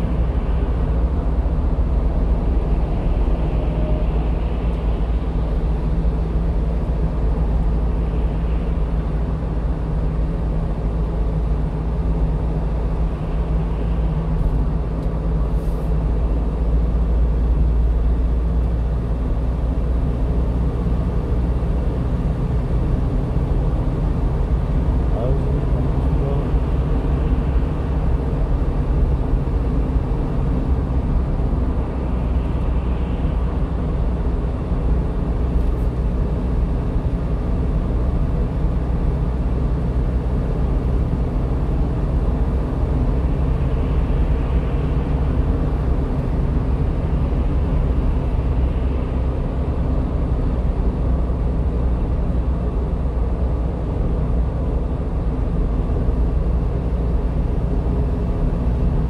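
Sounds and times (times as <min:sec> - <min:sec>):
truck engine drone: 0:00.0 - 0:59.0.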